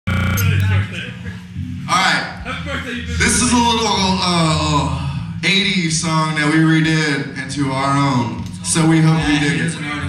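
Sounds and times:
amplified electric buzz: 0.1s - 1.9s
low amplifier hum: 0.1s - 10.0s
murmur of voices: 0.1s - 10.0s.

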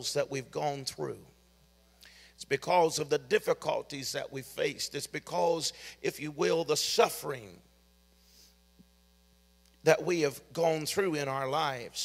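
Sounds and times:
man talking: 0.0s - 1.3s, 2.4s - 7.6s, 9.8s - 12.0s
electrical mains hum: 0.0s - 12.0s
faint breath into microphone: 1.9s - 2.4s, 5.8s - 6.0s, 8.1s - 8.7s.

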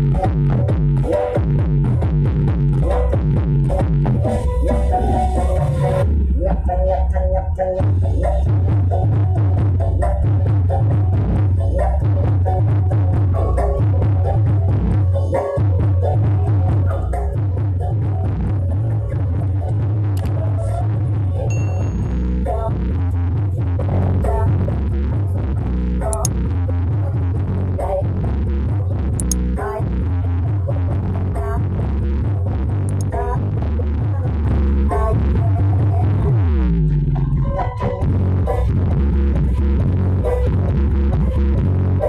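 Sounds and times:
loud bass-heavy dance music: 0.0s - 42.0s.

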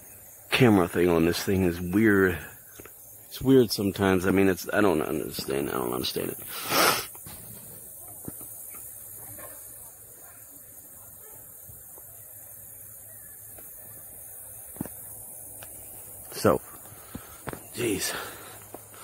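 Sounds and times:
outdoor background hiss: 0.0s - 19.0s.

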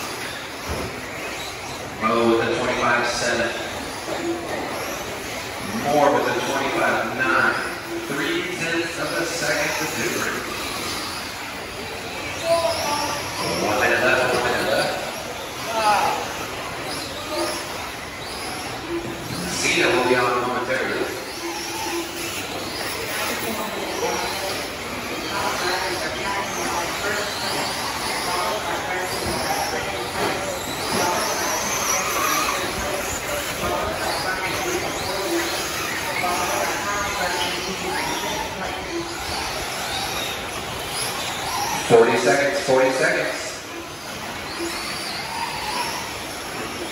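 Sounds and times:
electric motors whining: 0.0s - 46.9s
voices: 0.0s - 46.9s.

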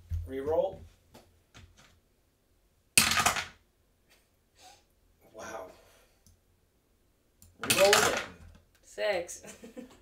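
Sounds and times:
die clattering down wooden tower: 7.6s - 8.4s.

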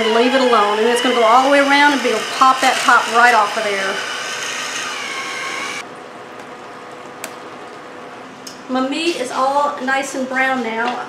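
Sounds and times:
electric can opener motor whine: 0.0s - 5.8s.

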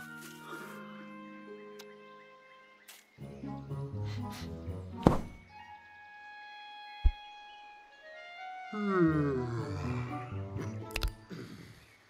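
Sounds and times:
soft orchestral music: 0.0s - 11.4s
short deep thud: 5.0s - 5.4s.

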